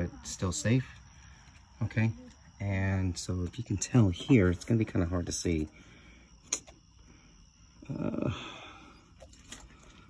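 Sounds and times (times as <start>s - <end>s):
man speaking: 1.8s - 5.7s.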